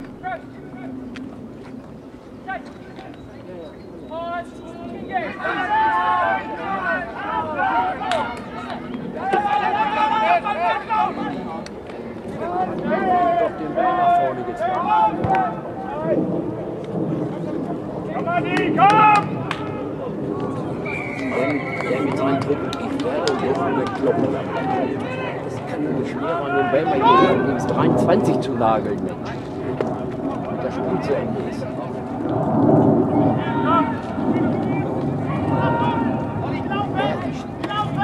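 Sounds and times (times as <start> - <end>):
voices of onlookers: 2.4 - 38.0
people shouting: 5.1 - 8.4, 9.2 - 11.3, 18.2 - 19.8, 33.3 - 38.0.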